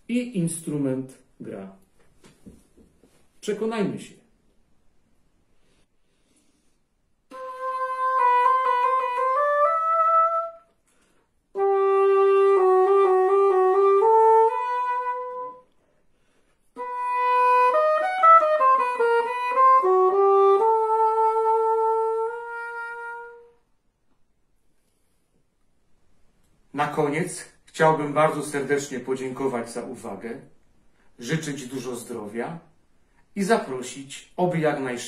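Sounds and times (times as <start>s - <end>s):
solo english horn melody: 7.3s - 10.8s, 11.5s - 15.8s, 16.8s - 23.7s.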